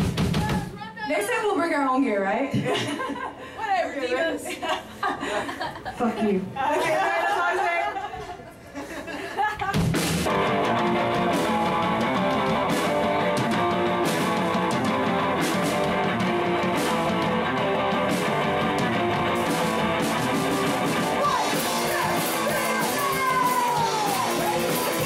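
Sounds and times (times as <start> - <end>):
rock band playing: 0.0 - 0.9, 9.7 - 25.0.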